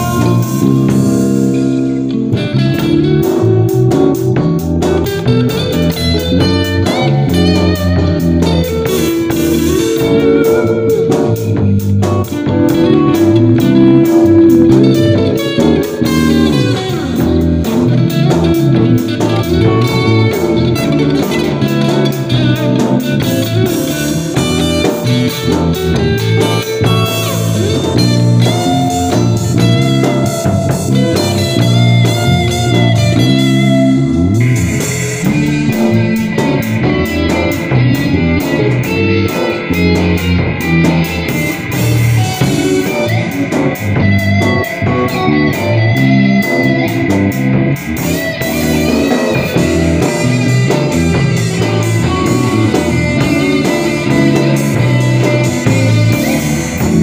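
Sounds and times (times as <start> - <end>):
backing track with bass and drums: 0.0 - 57.0
electric guitar lead line: 0.0 - 57.0.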